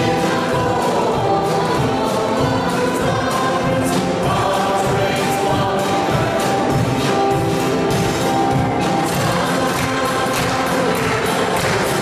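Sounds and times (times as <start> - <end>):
congregation and choir singing hymn: 0.0 - 12.0
instrumental accompaniment: 0.0 - 12.0
light percussion beat: 0.0 - 12.0.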